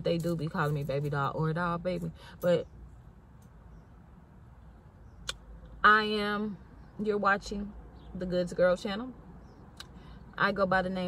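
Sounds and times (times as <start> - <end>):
woman speaking: 0.0 - 2.6, 5.8 - 9.2, 10.4 - 11.0.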